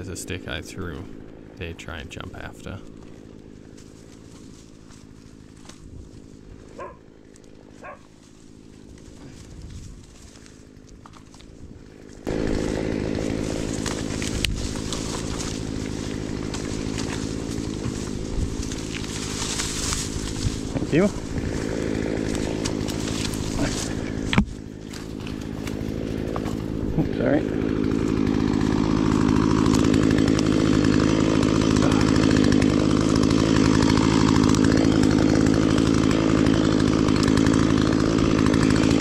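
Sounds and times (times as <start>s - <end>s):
chainsaw running: 0.0s - 39.0s.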